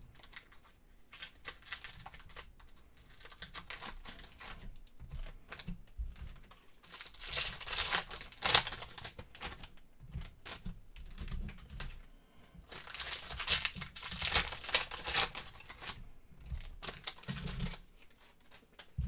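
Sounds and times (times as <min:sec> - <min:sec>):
foil wrapper crinkling and tearing: 0:00.0 - 0:12.0, 0:12.6 - 0:19.0.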